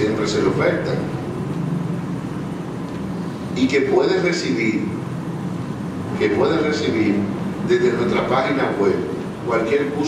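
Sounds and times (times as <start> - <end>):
background hum and hiss: 0.0 - 10.0
low steady drone: 0.0 - 10.0.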